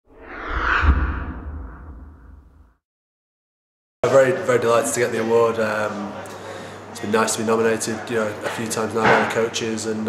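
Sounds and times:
rushing whoosh: 0:00.0 - 0:02.7
deep bass boom: 0:00.3 - 0:02.7.

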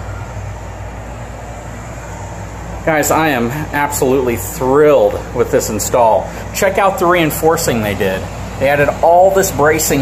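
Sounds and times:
air conditioner hum: 0:00.0 - 0:10.0
blower air rush: 0:00.0 - 0:10.0.

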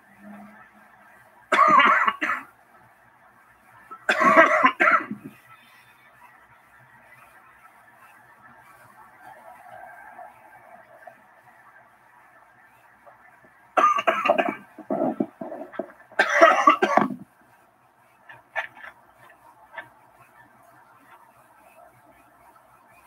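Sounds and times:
faint steady background noise: 0:00.0 - 0:23.0
person coughing: 0:01.6 - 0:02.4, 0:04.1 - 0:05.3, 0:13.8 - 0:17.2.

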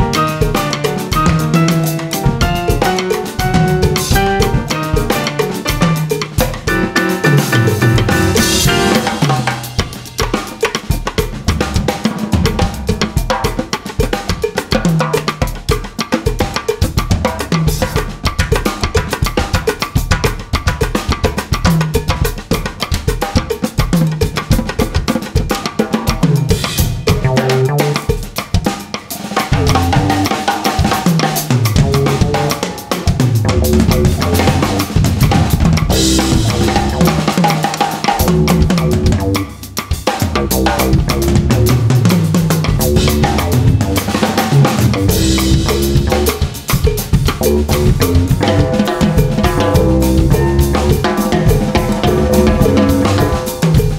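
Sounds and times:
keyboard bass line and chords: 0:00.0 - 0:09.7, 0:27.1 - 0:28.1, 0:29.5 - 0:30.4, 0:31.7 - 0:37.4, 0:38.2 - 0:39.5, 0:40.4 - 0:42.0, 0:42.6 - 0:46.5, 0:47.3 - 0:48.8, 0:49.5 - 0:53.4
drum kits playing: 0:00.0 - 0:53.9.

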